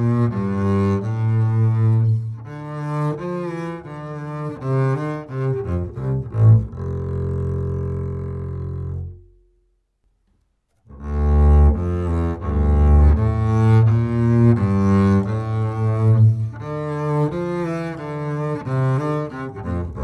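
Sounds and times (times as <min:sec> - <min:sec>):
bowed double bass: 0:00.0 - 0:09.7, 0:10.9 - 0:20.0.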